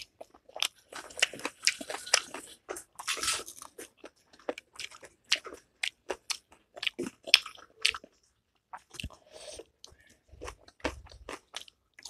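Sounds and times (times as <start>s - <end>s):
person chewing food: 0.0s - 12.0s.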